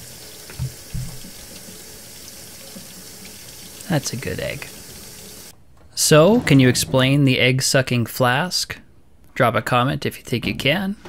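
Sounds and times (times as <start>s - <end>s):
faucet water splashing into steel sink: 0.0s - 4.0s.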